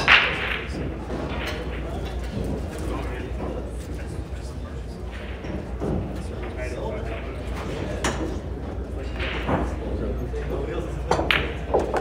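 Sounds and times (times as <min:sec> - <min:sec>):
pool balls cracking: 0:00.0 - 0:12.0
pool hall hum: 0:00.0 - 0:12.0.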